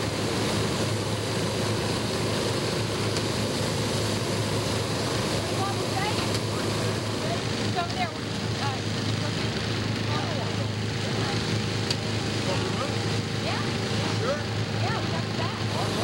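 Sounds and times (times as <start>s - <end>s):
steady rushing noise: 0.0s - 16.0s.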